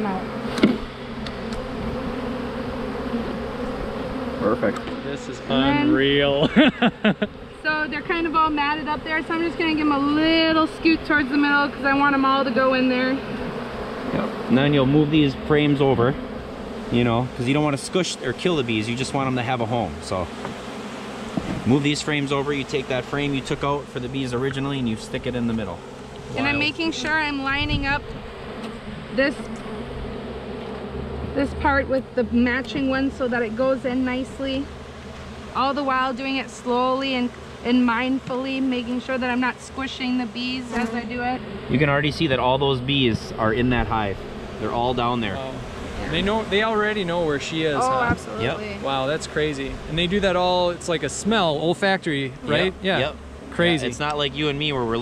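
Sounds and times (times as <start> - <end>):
bees buzzing: 0.0 - 55.0.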